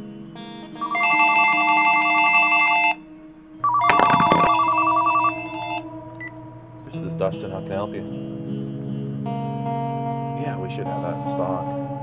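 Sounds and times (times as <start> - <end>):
telephone ringing: 0.9 - 2.9, 3.6 - 5.5.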